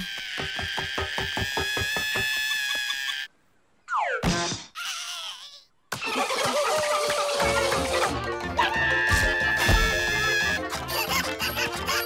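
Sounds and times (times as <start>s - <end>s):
cartoon music with fast pulse: 7.2s - 12.0s.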